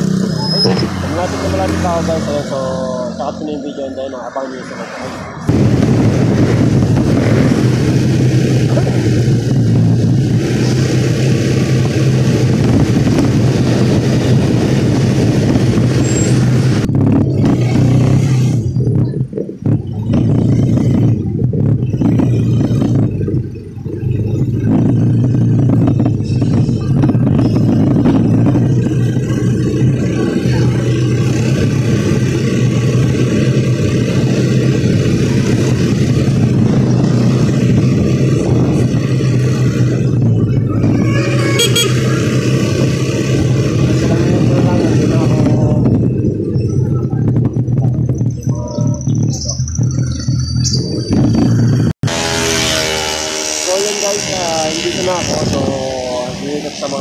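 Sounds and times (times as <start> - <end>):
wind rush on microphone: 0.0 - 52.2, 54.3 - 57.0
motorcycle engine running: 0.0 - 57.0.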